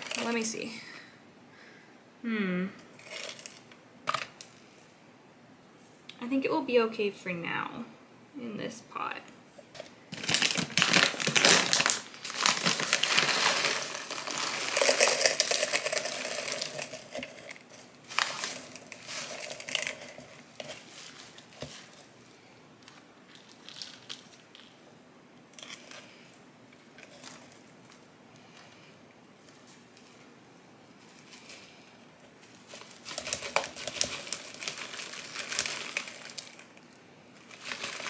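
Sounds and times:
plastic bag crinkling: 0.0 - 0.5, 3.0 - 4.7, 9.8 - 22.2, 22.8 - 24.8, 30.9 - 38.0
potting mix rattling: 0.0 - 0.6, 3.0 - 4.5, 9.8 - 22.2, 31.0 - 38.0.

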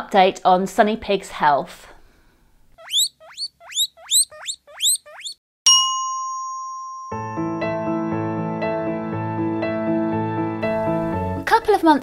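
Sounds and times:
short rising whistles: 2.8 - 5.4
bright ringing chime: 5.7 - 7.8.

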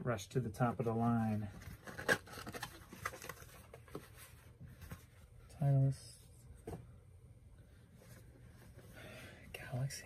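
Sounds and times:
caps rustling and scratching: 0.6 - 7.0, 7.8 - 9.0.

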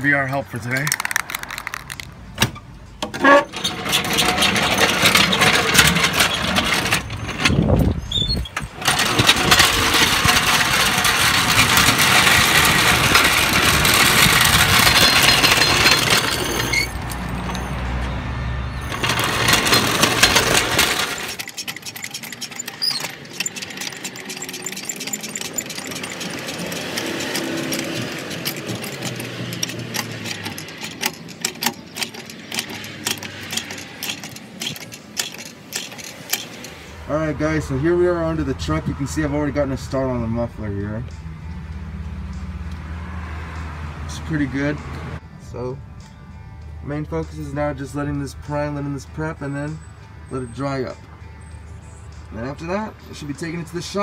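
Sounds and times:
floor jack rattling on paving: 0.8 - 2.1, 3.0 - 17.6, 18.8 - 36.9
floor jack clicking: 8.5 - 16.9, 18.9 - 36.8.

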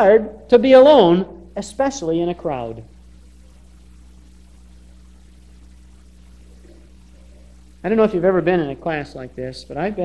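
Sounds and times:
low even hum: 0.0 - 10.0
recording hiss: 0.0 - 10.0.

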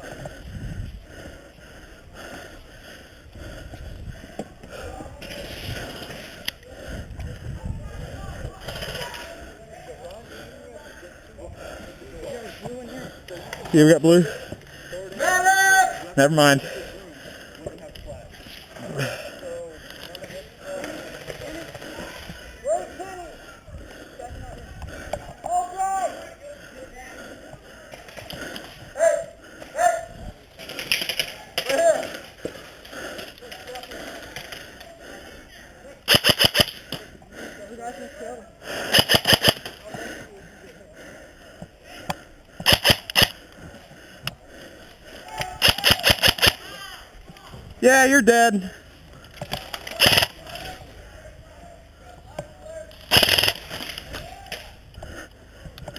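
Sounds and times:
distant shouting: 14.2 - 17.6, 18.8 - 27.9, 28.8 - 30.4, 43.4 - 55.7
airsoft gun firing bursts: 36.1 - 36.8, 38.9 - 39.7, 42.6 - 43.3, 45.6 - 46.6, 50.0 - 50.4, 53.1 - 53.7.

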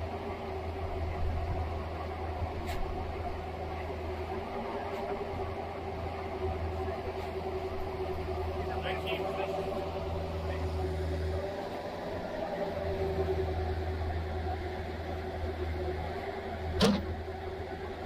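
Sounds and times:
digging machine engine humming: 0.0 - 18.0.

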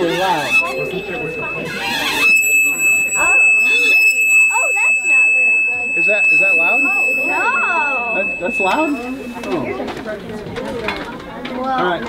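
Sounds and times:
metal rod ringing high-pitched: 0.0 - 9.8.

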